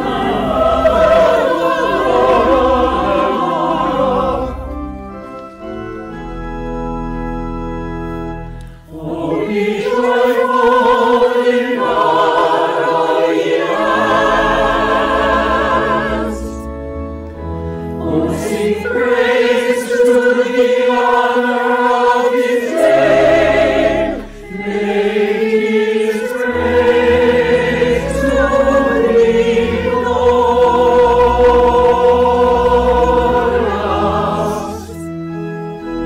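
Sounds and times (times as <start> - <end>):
choir singing an anthem: 0.0 - 5.0, 8.9 - 16.7, 17.9 - 36.0
organ accompaniment: 0.0 - 36.0.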